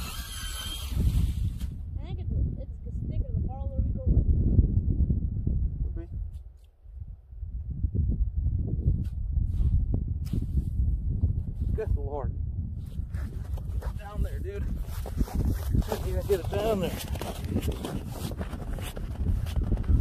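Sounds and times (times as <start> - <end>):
wind rumbling on microphone: 0.0 - 20.0
person speaking: 15.8 - 17.2.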